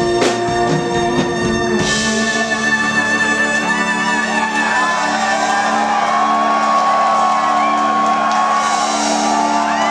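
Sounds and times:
live rock band sustained chord: 0.0s - 9.9s
audience whooping and shouting: 3.4s - 9.9s.

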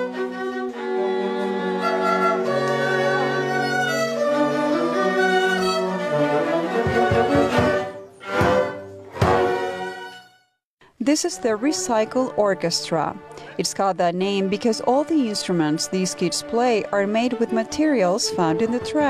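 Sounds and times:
string ensemble playing slow melody: 0.0s - 10.4s, 11.1s - 19.0s.

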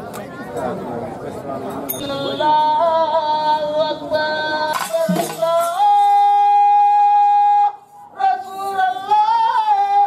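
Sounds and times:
man singing devotional song: 1.9s - 10.0s.

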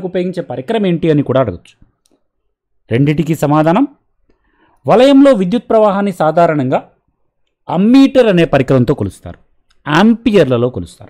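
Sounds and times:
person speaking: 2.8s - 4.2s, 4.8s - 11.0s.

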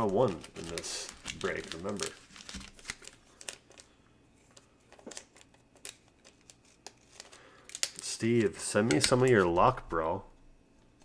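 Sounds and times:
card sleeves rustling: 0.0s - 7.4s.

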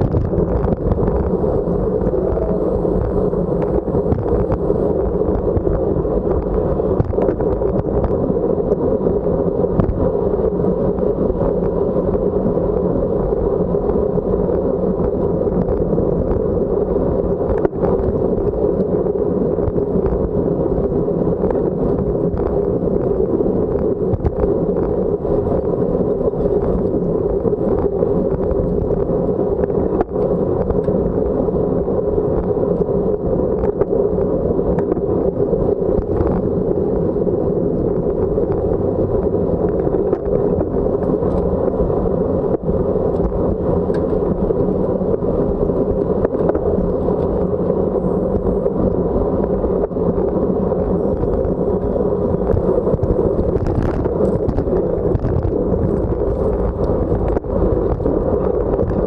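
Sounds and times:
wind on microphone: 0.0s - 59.0s.

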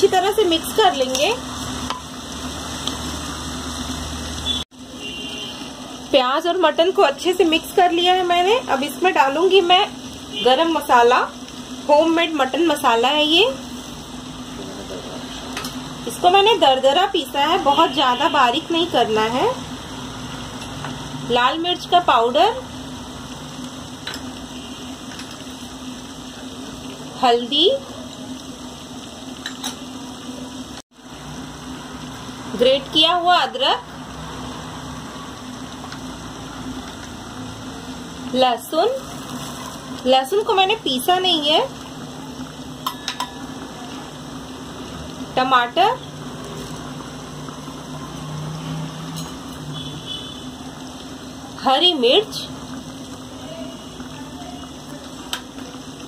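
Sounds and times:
meat and onions sizzling in oil: 0.0s - 56.0s.

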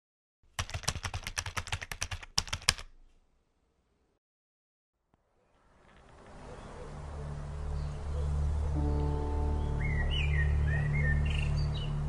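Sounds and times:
rapid keyboard typing: 0.5s - 3.0s.

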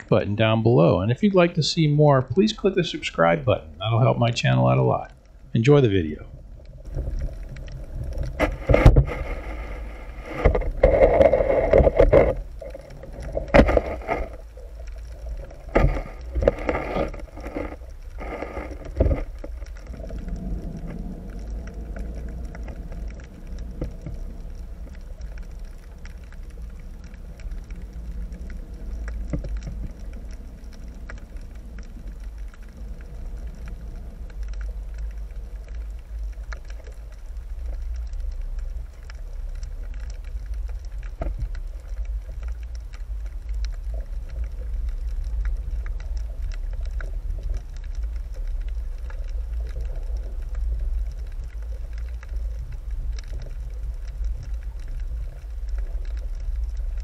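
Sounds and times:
faint hum: 0.0s - 57.0s
rushing water rumble underwater: 0.0s - 57.0s
knocks and scrapes on rocky bottom: 6.8s - 27.8s, 33.6s - 57.0s.

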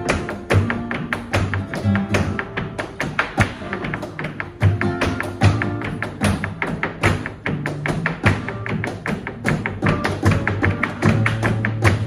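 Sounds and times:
flamenco guitar: 0.0s - 12.0s
handclaps: 0.0s - 12.0s.

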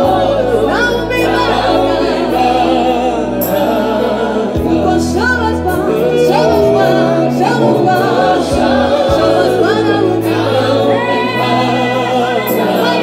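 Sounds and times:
held low accompaniment notes: 0.0s - 12.0s
gospel group singing: 0.0s - 13.0s
woman's lead singing voice: 0.0s - 13.0s.

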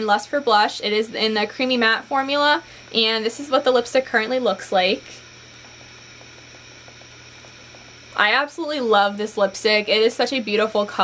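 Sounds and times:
faint low hum: 0.0s - 11.0s
steady hiss: 0.0s - 11.0s.

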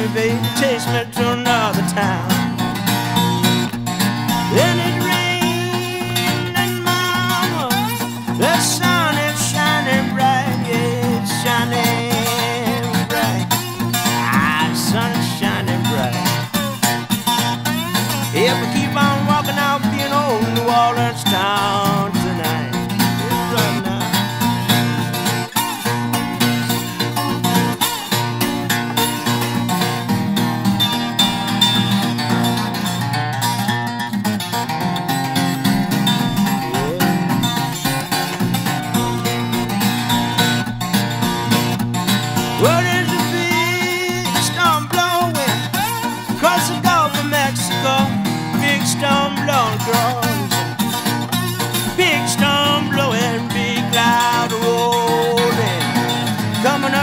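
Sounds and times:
acoustic guitar playing blues: 0.0s - 57.0s.

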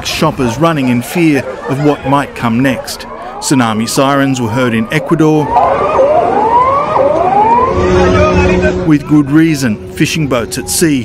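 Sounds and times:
warning siren sweeping tone: 1.0s - 11.0s.

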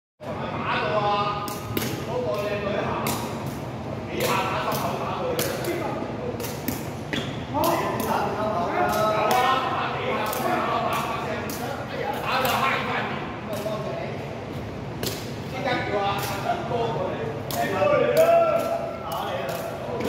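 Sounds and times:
people talking and calling out: 0.2s - 20.0s.

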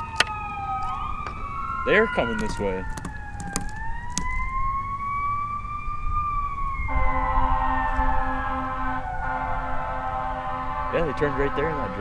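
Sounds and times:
ambulance siren wailing: 0.0s - 12.0s
steady droning tone with pulsing low note: 6.9s - 12.0s.

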